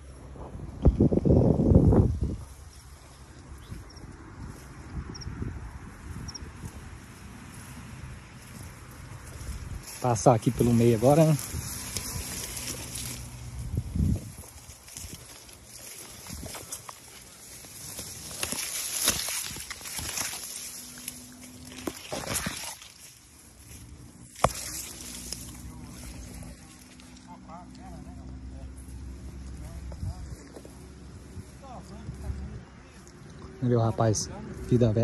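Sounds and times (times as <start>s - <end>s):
cane leaves rustling and scraping: 0.0s - 35.0s.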